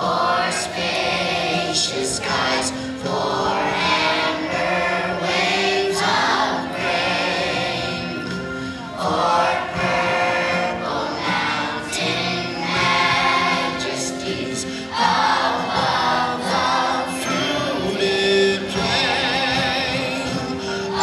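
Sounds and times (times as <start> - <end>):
children's choir singing: 0.0 - 21.0.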